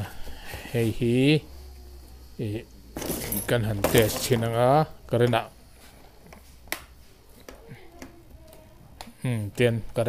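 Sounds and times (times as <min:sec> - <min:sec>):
metallic jingling: 0:03.0 - 0:04.4
man speaking: 0:03.4 - 0:05.6.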